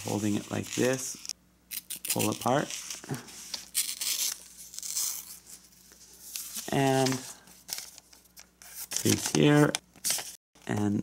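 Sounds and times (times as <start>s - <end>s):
paper ripping: 0.0s - 5.7s.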